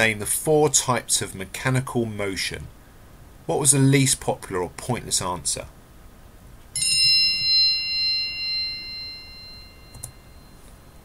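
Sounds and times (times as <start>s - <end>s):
bright chime: 6.8s - 11.0s.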